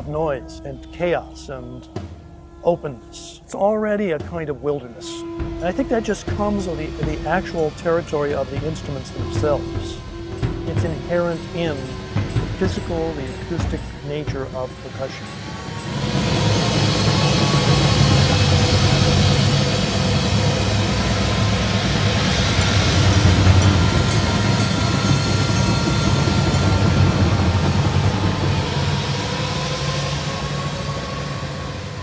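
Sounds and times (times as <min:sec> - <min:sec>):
gliding tones: 0:00.0 - 0:32.0
massed percussion ensemble: 0:00.0 - 0:32.0.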